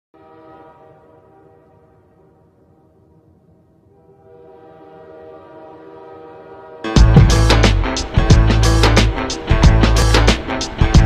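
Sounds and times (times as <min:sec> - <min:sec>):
train horn chord: 0:00.1 - 0:11.0.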